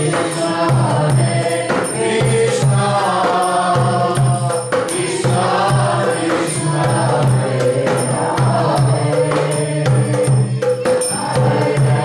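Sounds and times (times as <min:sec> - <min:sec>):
man singing a chant: 0:00.0 - 0:12.0
steady percussion beat: 0:00.0 - 0:12.0.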